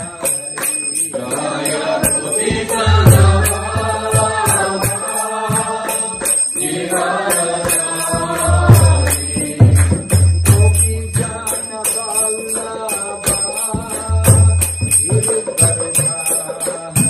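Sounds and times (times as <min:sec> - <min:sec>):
small hand cymbals: 0:00.0 - 0:17.0.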